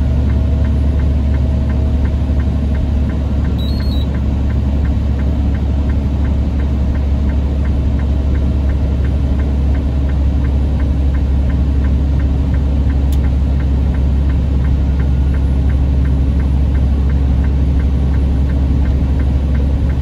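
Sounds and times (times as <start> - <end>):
truck engine and road drone: 0.0 - 20.0
light regular ticking: 0.2 - 20.0
brief high beep: 3.6 - 4.1.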